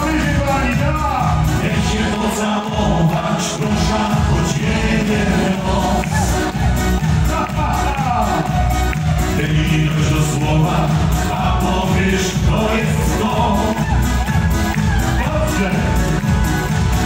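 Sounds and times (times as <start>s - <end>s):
man singing lead: 0.0s - 16.7s
music with steady beat: 0.0s - 17.0s
women backing singing: 1.6s - 15.9s.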